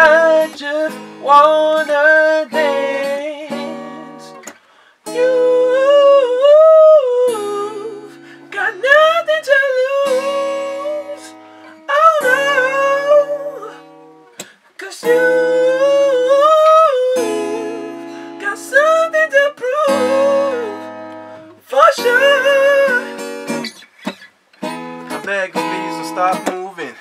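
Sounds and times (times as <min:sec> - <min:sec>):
person singing wordless melody: 0:00.0 - 0:14.0, 0:14.7 - 0:23.7
acoustic guitar strumming: 0:00.0 - 0:27.0.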